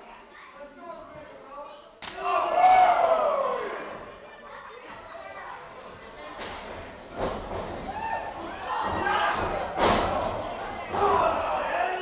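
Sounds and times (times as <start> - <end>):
crowd wooing: 2.2 - 3.9.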